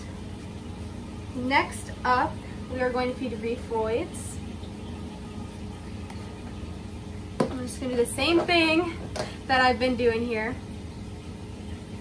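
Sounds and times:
steady low hum: 0:00.0 - 0:12.0
woman speaking: 0:01.4 - 0:04.4, 0:07.4 - 0:10.6.

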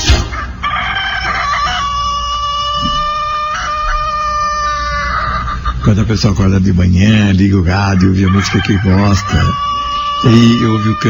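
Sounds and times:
rooster crowing on radio: 0:07.7 - 0:11.0.

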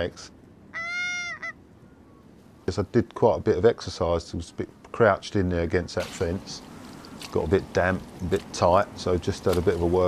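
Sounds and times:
goose honking: 0:00.8 - 0:01.6.

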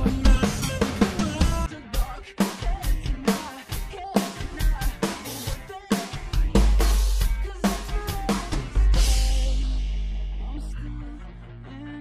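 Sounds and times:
drum kit playing: 0:00.0 - 0:10.7
recorded song: 0:00.0 - 0:12.0
deep bass: 0:06.4 - 0:12.0.

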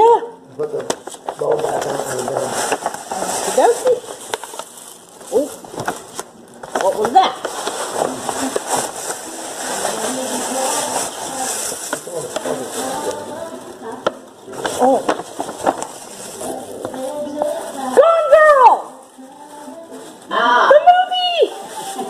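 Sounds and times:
paper bag and tissue rustling: 0:00.6 - 0:22.0.

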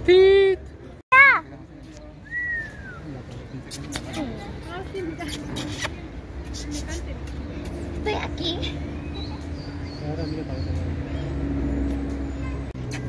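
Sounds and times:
murmur of people talking: 0:00.0 - 0:13.0.

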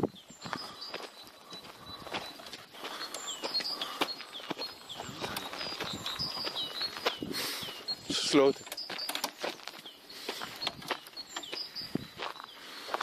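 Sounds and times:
footsteps on gravel path: 0:00.0 - 0:13.0
small birds chirping: 0:00.0 - 0:13.0.

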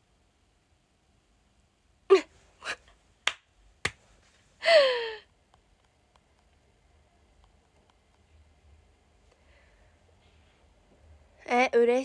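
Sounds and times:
woman's breathy vocal sounds: 0:02.1 - 0:02.9, 0:04.6 - 0:05.3.

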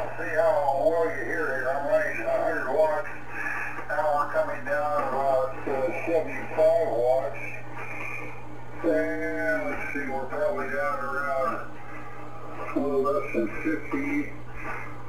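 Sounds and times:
man talking over radio: 0:00.0 - 0:07.6, 0:08.8 - 0:11.7, 0:12.6 - 0:14.7
steady low hum: 0:00.0 - 0:15.0.

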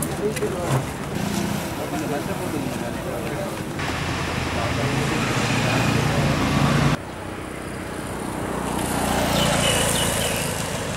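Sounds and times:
traffic engines and road noise: 0:00.0 - 0:10.9
motorcycle passing: 0:03.8 - 0:10.9.

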